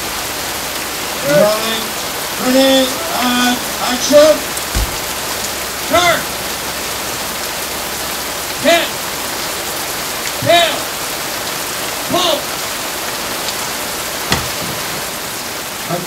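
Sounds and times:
heavy rain on wet ground: 0.0s - 16.0s
sharp knock: 4.7s - 5.1s, 14.3s - 14.8s
person shouting: 12.1s - 12.5s.

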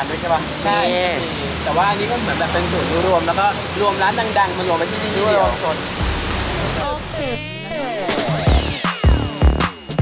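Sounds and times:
water fountain splashing: 0.0s - 7.4s
electronic background music: 5.4s - 10.0s.

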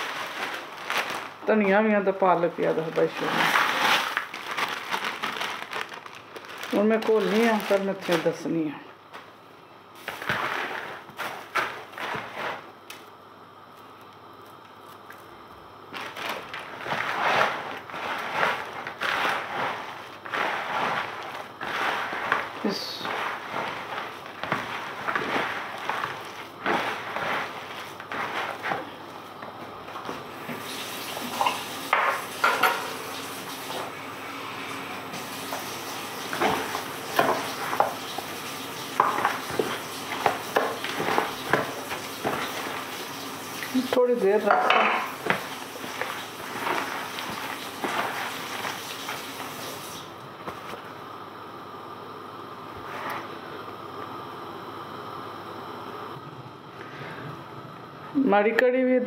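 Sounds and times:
hands mixing batter in bowl: 0.0s - 8.8s, 10.0s - 12.7s, 13.8s - 31.6s, 35.0s - 50.9s.

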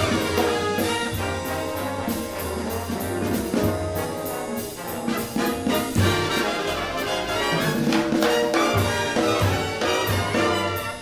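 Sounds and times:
big band playing jazz: 0.0s - 11.0s.

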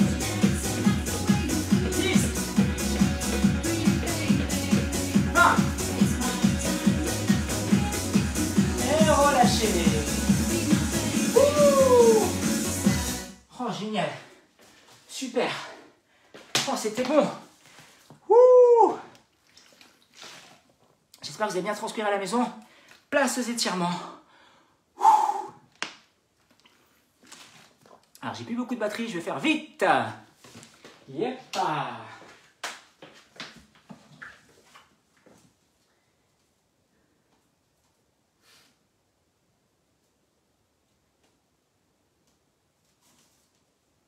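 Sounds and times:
man exclaiming loudly: 5.3s - 5.7s, 11.4s - 12.4s, 18.3s - 19.1s
man breathing heavily: 24.2s - 25.7s.

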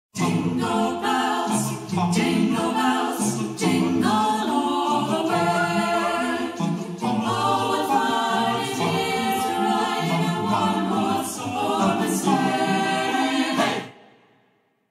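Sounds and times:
a cappella group singing: 0.1s - 14.2s.

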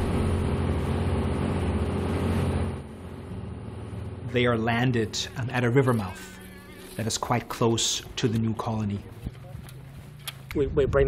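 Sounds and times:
boat engine humming: 0.0s - 10.7s.

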